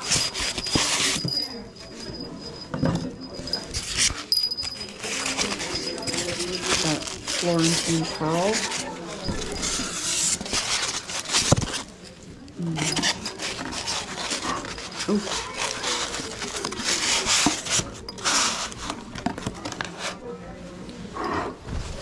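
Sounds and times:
faint voices: 0.0s - 22.0s.

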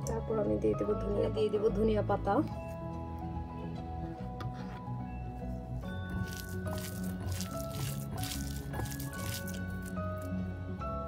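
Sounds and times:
background music: 0.0s - 11.0s
wet squishing of food mixed by hand: 6.1s - 10.3s.

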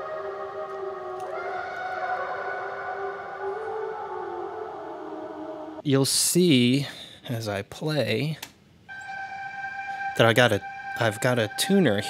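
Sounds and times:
warbly synth-like tape tone: 8.9s - 12.0s.

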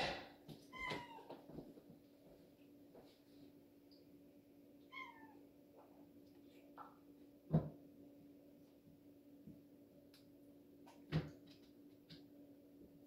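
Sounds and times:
faint steady hum: 0.0s - 13.0s
cat meowing: 0.6s - 1.4s, 4.9s - 5.4s.

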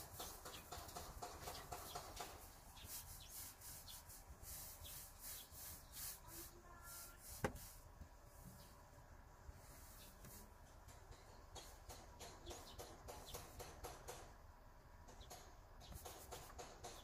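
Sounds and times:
paint roller rubbing swish: 2.2s - 7.9s.

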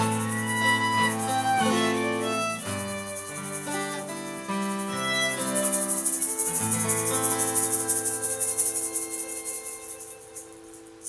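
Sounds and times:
acoustic guitar: 0.0s - 11.0s
hand shaker rattling: 0.0s - 11.0s
violin: 0.0s - 11.0s.

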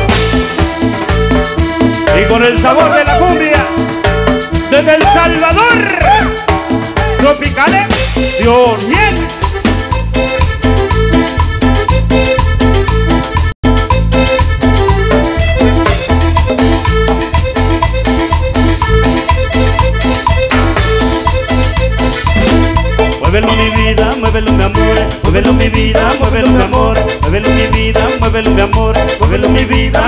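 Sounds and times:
live cumbia band playing: 0.0s - 30.0s
sliding-note melody: 9.4s - 23.9s.

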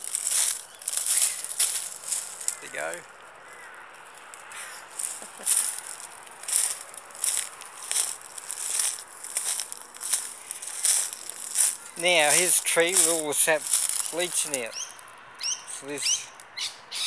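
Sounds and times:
footsteps crunching dry leaves: 0.0s - 15.2s.

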